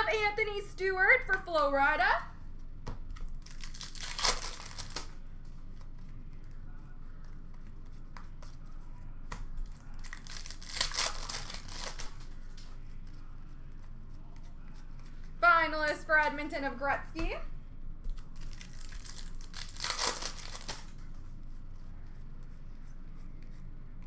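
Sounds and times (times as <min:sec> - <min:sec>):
wrappers tearing and crinkling: 0:03.3 - 0:05.2, 0:09.7 - 0:12.3, 0:18.2 - 0:21.0.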